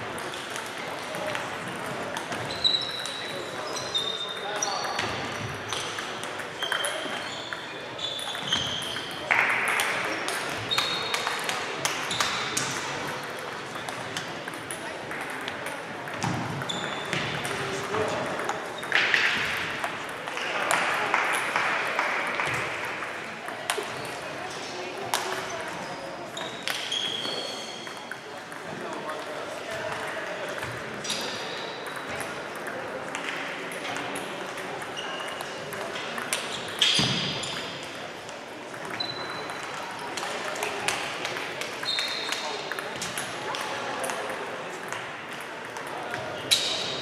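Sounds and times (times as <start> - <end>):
table tennis balls clicking: 0.0 - 3.6, 4.2 - 24.4, 25.0 - 46.7.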